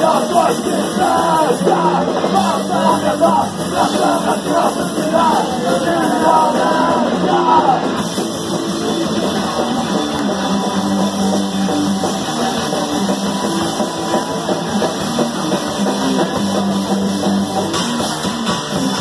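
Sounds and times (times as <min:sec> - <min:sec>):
bass riffing: 0:00.0 - 0:19.0
drum kit: 0:00.0 - 0:19.0
electric guitar riffing: 0:00.0 - 0:19.0.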